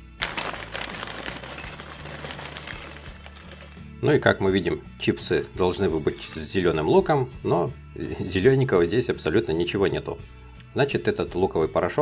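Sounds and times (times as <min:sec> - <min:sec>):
potato chips pouring onto a plate: 0:00.0 - 0:03.8.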